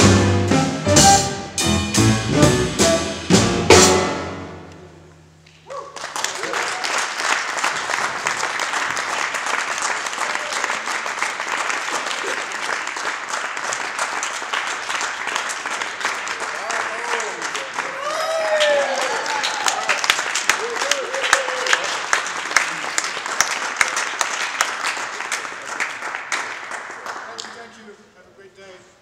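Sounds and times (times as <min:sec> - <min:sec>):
jazz quartet playing: 0:00.0 - 0:05.2
audience applauding: 0:05.7 - 0:27.8.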